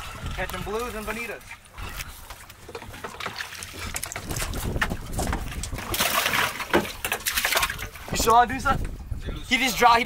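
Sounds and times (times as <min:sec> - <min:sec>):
water splashing against boat: 0:00.0 - 0:10.0.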